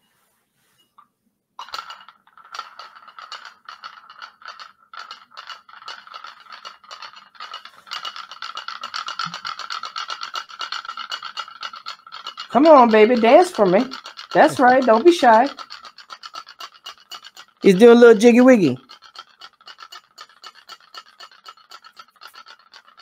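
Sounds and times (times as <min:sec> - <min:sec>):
magnet rattling against glass cup: 0:01.0 - 0:23.0.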